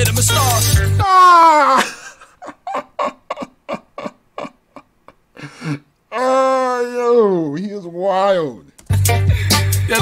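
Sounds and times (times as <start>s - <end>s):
man's high-pitched exclamation: 1.0s - 1.9s, 6.1s - 7.7s.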